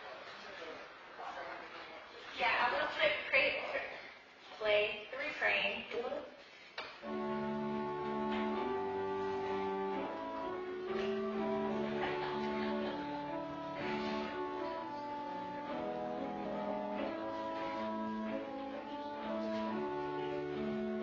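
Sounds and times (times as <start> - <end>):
church organ playing hymn: 7.0 - 21.0.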